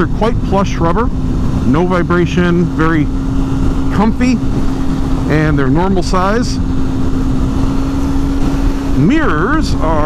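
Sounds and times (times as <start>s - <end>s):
motorcycle engine cruising: 0.0s - 10.0s
wind noise on microphone: 0.0s - 10.0s.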